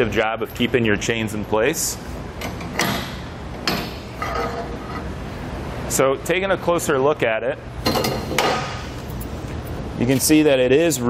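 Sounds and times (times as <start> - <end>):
metal scraping: 3.8 - 5.2.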